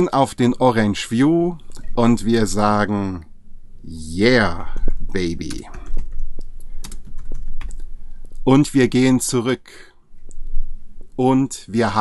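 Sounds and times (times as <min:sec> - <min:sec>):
typing on computer keyboard: 0:05.5 - 0:07.8.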